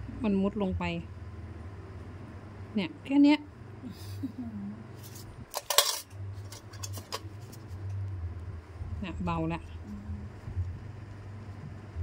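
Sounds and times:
steady low hum: 0.0s - 12.0s
metal instruments clicking: 5.5s - 7.3s.

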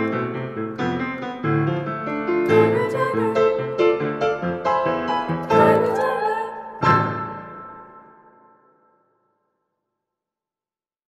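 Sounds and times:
piano playing held chords: 0.0s - 8.6s.

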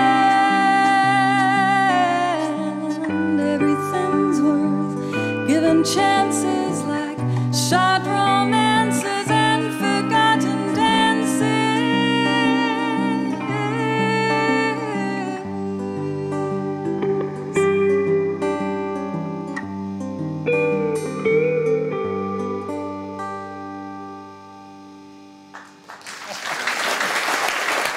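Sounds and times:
slow guitar song: 0.0s - 26.0s
audience applause: 25.6s - 27.9s.

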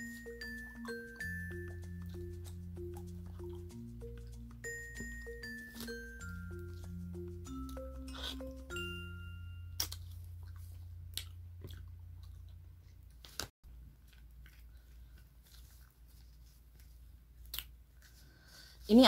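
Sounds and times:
mallet percussion tune: 0.0s - 9.8s
pulp being chewed: 1.7s - 4.6s, 9.8s - 13.1s, 14.0s - 18.1s.

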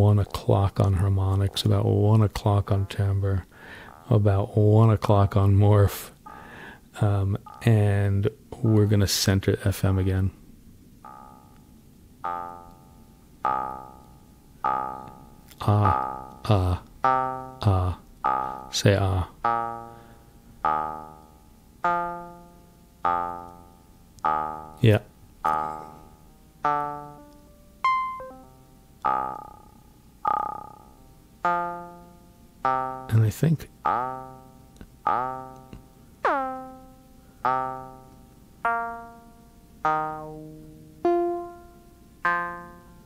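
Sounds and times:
synth notes with vowel-like tone: 7.2s - 8.9s, 12.2s - 43.0s.

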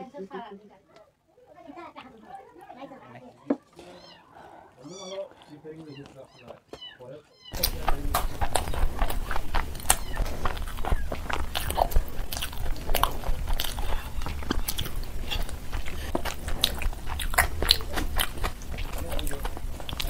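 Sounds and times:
person chewing food: 7.5s - 20.0s
steady low hum: 7.6s - 20.0s
wet clicks of hand mixing food: 7.6s - 20.0s.

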